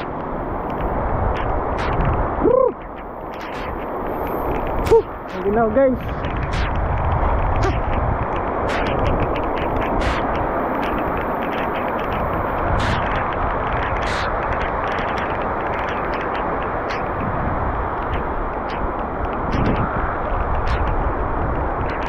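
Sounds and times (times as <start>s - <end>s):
heavy rain pouring: 0.0s - 22.0s.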